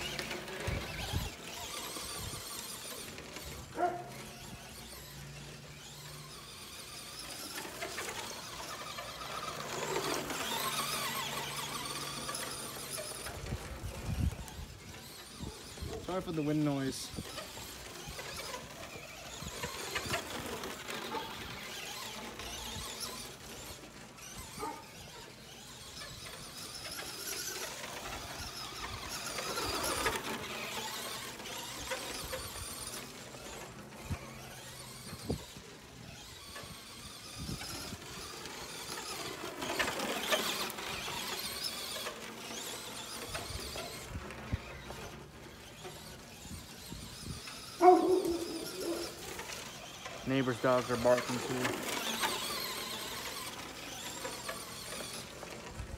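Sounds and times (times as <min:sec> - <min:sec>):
toy truck electric motor whining: 0:00.0 - 0:55.9
wind noise on microphone: 0:00.1 - 0:02.8, 0:13.2 - 0:16.1, 0:35.0 - 0:38.4, 0:46.4 - 0:48.0
dog barking: 0:03.8 - 0:04.1, 0:47.8 - 0:49.2.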